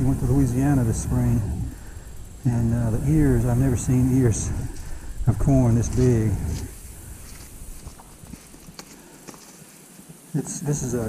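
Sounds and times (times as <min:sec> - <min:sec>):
corn husks rustling and crackling: 0:00.0 - 0:11.0.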